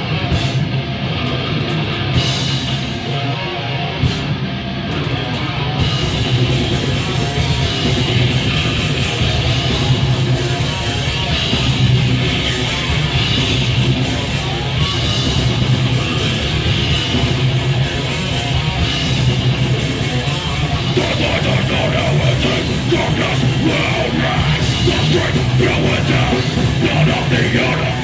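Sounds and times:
live heavy metal band: 0.0 - 28.0.

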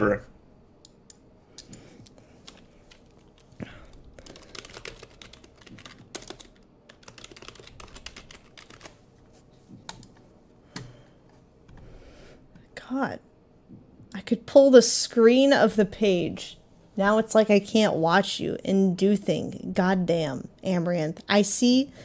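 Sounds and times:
keyboard typing clicks: 4.2 - 8.9.

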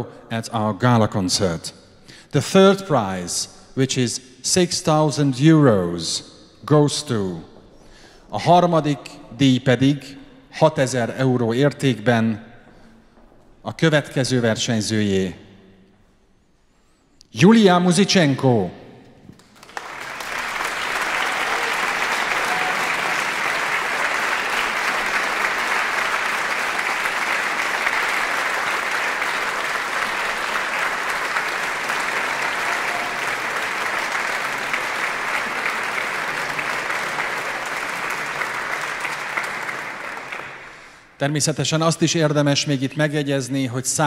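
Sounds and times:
audience applauding: 19.3 - 41.1.

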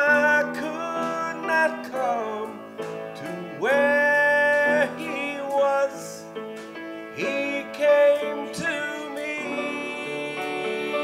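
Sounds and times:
man singing gospel: 0.0 - 6.4, 7.0 - 11.0
country instrumental accompaniment: 0.0 - 11.0.

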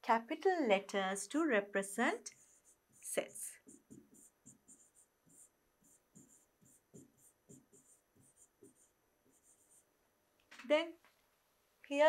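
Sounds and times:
pen scratching on whiteboard screen: 2.2 - 9.9.

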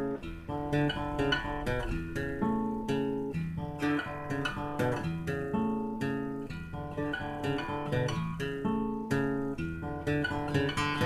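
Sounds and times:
acoustic guitar playing: 0.0 - 11.0.

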